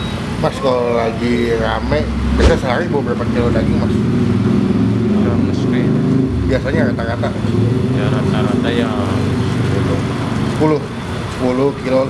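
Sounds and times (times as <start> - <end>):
vehicle engine hum: 0.0 - 12.0.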